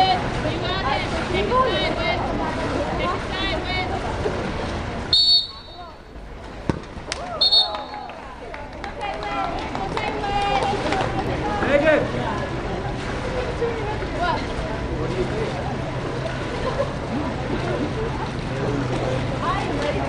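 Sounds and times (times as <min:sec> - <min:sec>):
people chattering and calling out: 0:00.0 - 0:20.0
referee whistle blasts: 0:05.1 - 0:05.9, 0:07.4 - 0:08.1.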